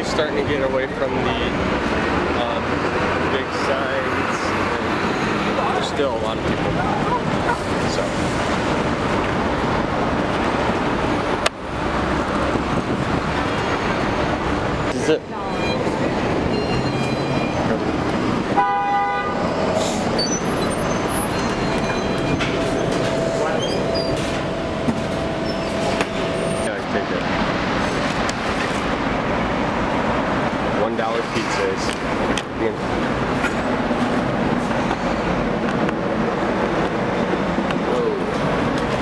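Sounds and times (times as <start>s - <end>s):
passers-by talking: 0.0s - 8.5s, 14.5s - 18.6s, 37.2s - 39.0s
steady traffic: 0.0s - 39.0s
steady tone: 13.5s - 28.3s
vehicle horn honking: 18.5s - 19.6s.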